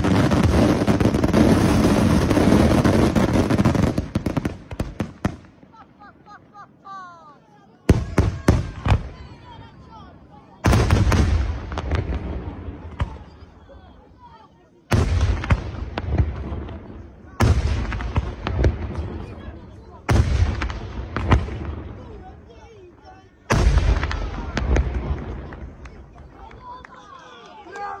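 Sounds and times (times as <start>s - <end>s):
voices: 5.6s - 28.0s.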